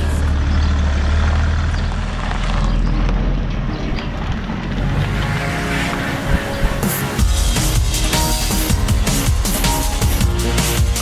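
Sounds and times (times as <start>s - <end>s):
car engine rumbling at low revs: 0.0s - 9.6s
background music: 4.6s - 11.0s.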